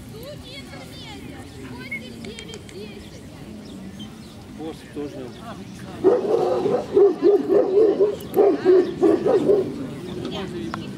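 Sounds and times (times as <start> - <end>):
dog barking: 6.0 - 9.7.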